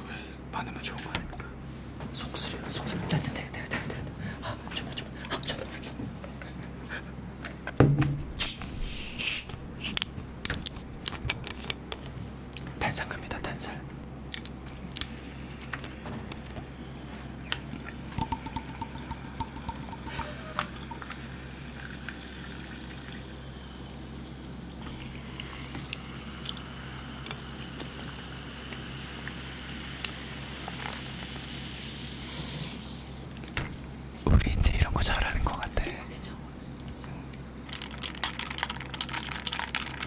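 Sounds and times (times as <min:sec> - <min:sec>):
water pouring into glasses: 0:17.8 - 0:24.0
bottles and glassware clicking: 0:18.2 - 0:21.0.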